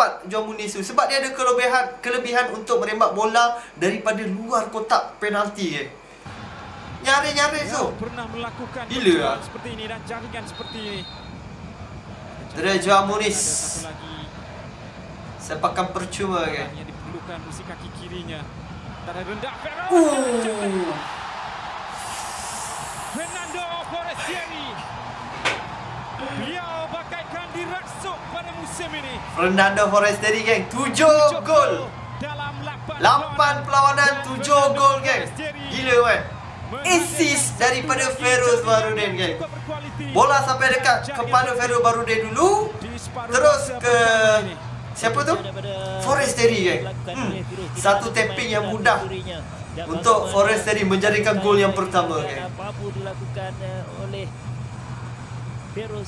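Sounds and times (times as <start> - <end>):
stadium background hum: 0.0 - 56.0
sharp knock: 25.3 - 25.8
commentator talking: 26.2 - 54.1.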